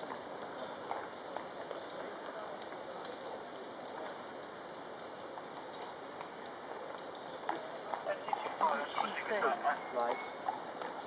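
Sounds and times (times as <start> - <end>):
horse hooves clip-clopping on pavement: 0.0 - 11.0
people talking: 7.9 - 10.3.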